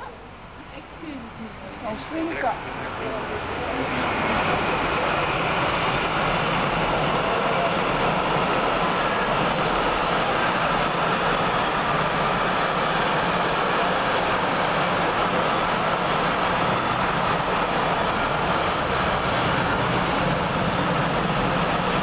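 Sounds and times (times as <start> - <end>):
freight train wheels on rails: 0.7 - 22.0.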